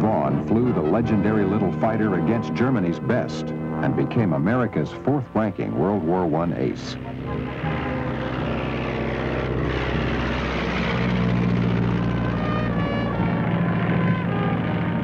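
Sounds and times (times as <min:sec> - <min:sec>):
propeller plane engine drone: 0:00.0 - 0:15.0.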